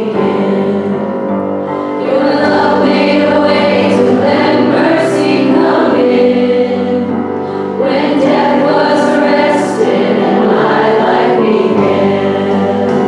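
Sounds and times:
young female voices singing: 0.0 - 1.3, 2.0 - 13.0
instrumental accompaniment: 0.0 - 13.0.

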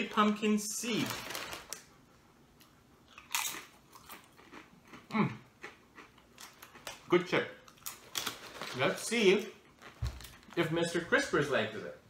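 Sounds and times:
chip bag crackling: 0.0 - 1.8, 7.8 - 10.9
chip crunching: 1.0 - 1.8, 3.1 - 10.7.

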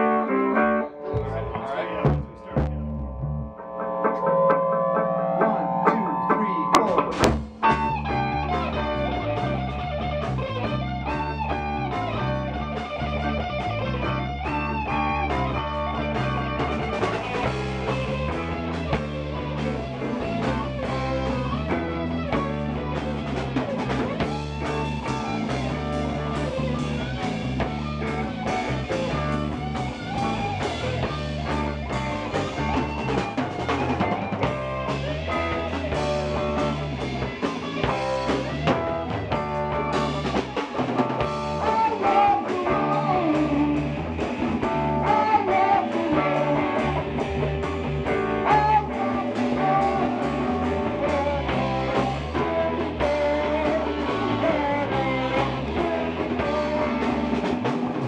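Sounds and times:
electric guitars and bass: 0.0 - 58.0
drums and percussion: 1.2 - 2.9, 3.6 - 58.0.

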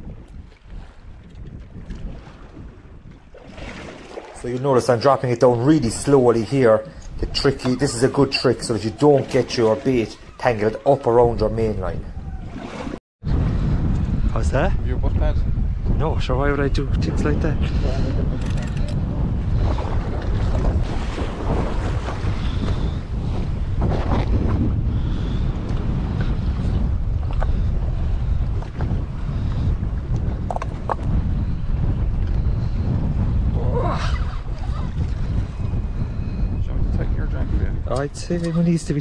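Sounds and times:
sea: 0.0 - 15.7, 16.4 - 39.0
wind buffeting microphone: 0.0 - 39.0.

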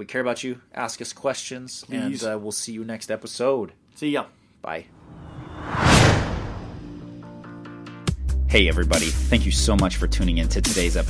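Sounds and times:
whoosh sound effect: 5.0 - 7.2.

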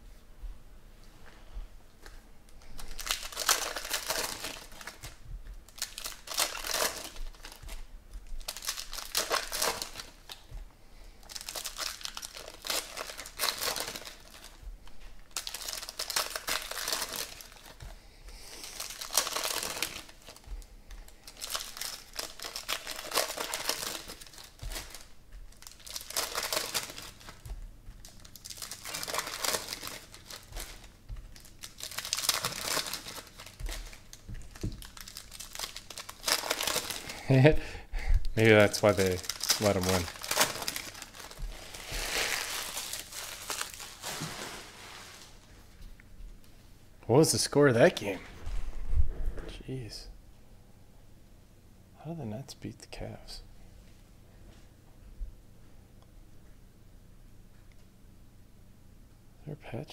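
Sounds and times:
foil packs tearing and crinkling: 2.6 - 10.5, 11.2 - 14.6, 15.2 - 37.5, 38.4 - 45.4.

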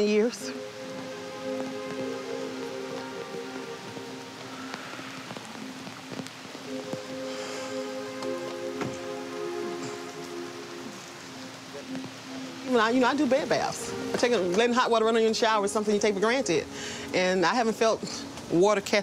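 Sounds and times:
raindrops ticking on surfaces: 0.0 - 19.0
soft background music: 0.0 - 19.0
steady rain falling: 0.0 - 19.0.

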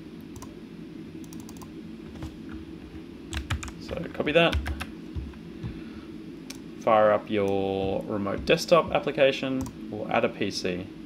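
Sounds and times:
steady low hum: 0.0 - 11.0
computer keyboard clicks: 1.3 - 2.3, 3.3 - 3.8, 4.5 - 4.9.

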